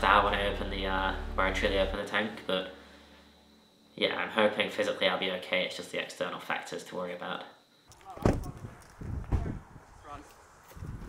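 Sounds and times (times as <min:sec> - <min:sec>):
low rumble: 0:00.0 - 0:02.0.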